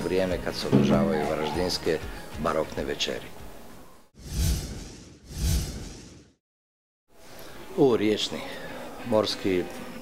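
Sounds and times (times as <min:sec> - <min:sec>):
whoosh with low boom: 0:04.2 - 0:06.4.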